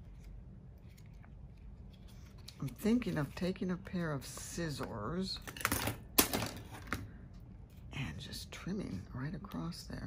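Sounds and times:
paper pages rustling: 0.0s - 4.9s.

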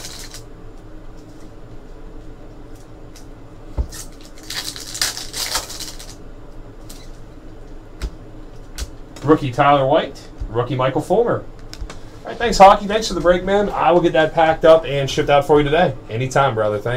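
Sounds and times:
foil wrapper crinkling: 0.0s - 0.5s, 3.9s - 6.2s.

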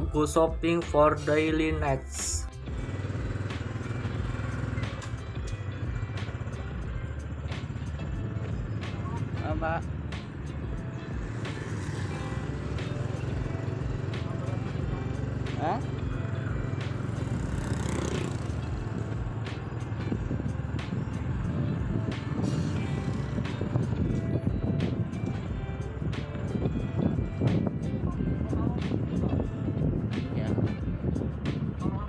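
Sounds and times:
music playing: 0.0s - 32.0s
motor scooter engine running: 2.6s - 32.0s
wind on microphone: 18.8s - 32.0s.

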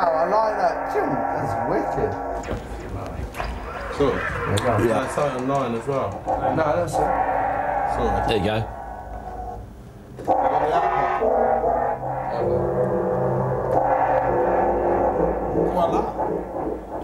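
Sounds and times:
synthesizer chords: 0.0s - 17.0s.

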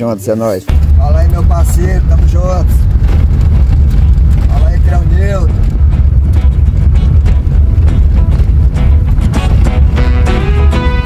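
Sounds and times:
loud low rumble: 0.7s - 11.0s.

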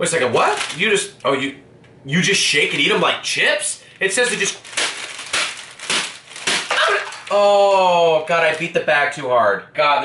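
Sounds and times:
plastic packet crinkling: 0.2s - 1.4s, 2.5s - 3.1s, 4.0s - 7.7s, 8.3s - 8.8s
dry noodles cracking: 0.4s - 1.3s, 4.2s - 7.8s.

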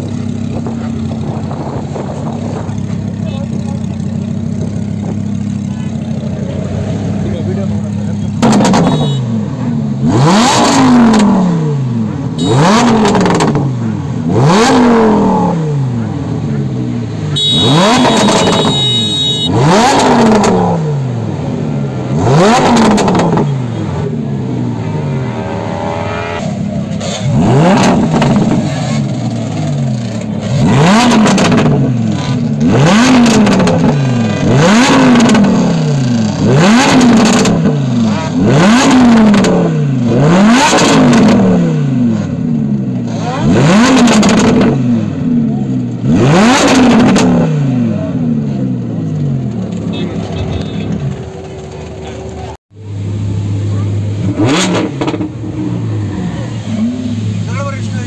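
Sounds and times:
car engine idling: 0.0s - 40.1s, 47.9s - 58.0s
car engine revving: 0.0s - 58.0s.

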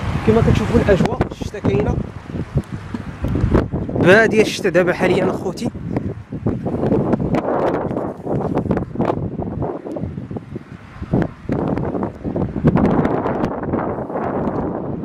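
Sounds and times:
wind buffeting microphone: 0.0s - 15.0s
short crackles and knocks: 2.5s - 3.6s.

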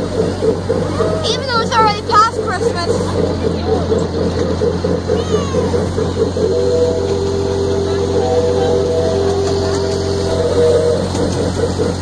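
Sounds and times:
miniature ride train hum: 0.0s - 12.0s
pulsing warbling tone: 0.0s - 12.0s
high-pitched squeal: 3.4s - 12.0s.

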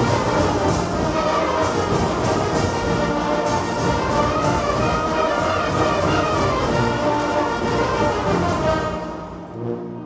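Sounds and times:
wind band playing: 0.0s - 10.0s.

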